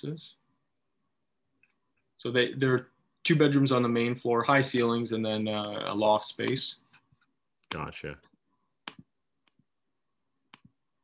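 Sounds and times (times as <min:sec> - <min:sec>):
computer mouse clicks: 0:08.8 - 0:09.7.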